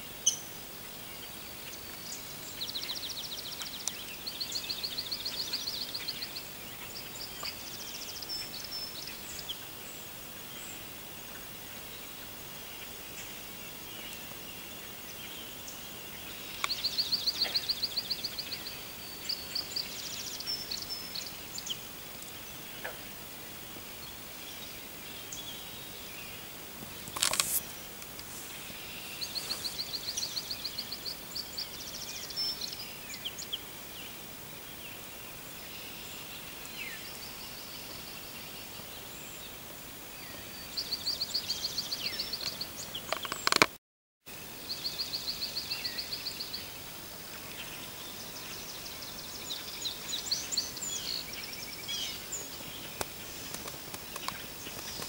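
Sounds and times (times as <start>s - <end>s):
outdoor hiss: 0.0s - 43.7s, 44.3s - 55.0s
songbird trill: 0.0s - 43.7s, 44.3s - 55.0s
soft bird calls: 24.0s - 34.2s, 40.2s - 43.8s
noise burst: 26.5s - 31.4s
short crackle: 26.8s - 29.8s.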